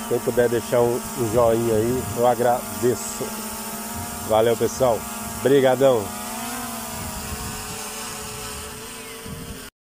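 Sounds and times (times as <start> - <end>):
drone propellers humming: 0.0 - 9.7.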